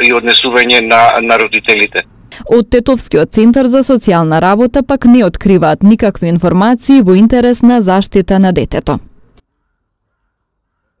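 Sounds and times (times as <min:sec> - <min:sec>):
narrator's voice: 0:00.0 - 0:09.1.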